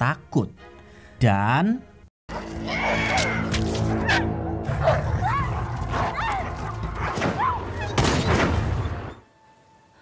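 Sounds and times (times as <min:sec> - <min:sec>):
dogs yelping and whining: 0:04.0 - 0:08.0.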